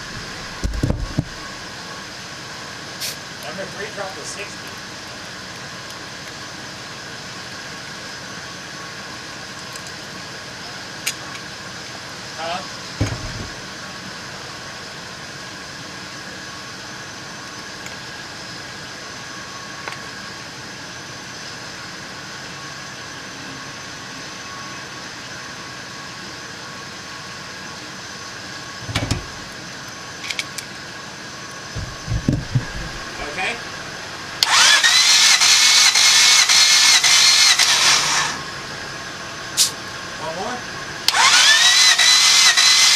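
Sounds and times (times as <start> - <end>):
knocks and clicks: 31.8 - 33.1
engine cranking on starter: 34.4 - 38.4, 41.1 - 42.9.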